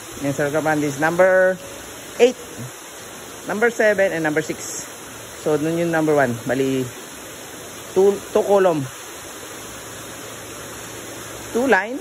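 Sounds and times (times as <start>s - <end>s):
water rushing in tanks: 0.0s - 12.0s.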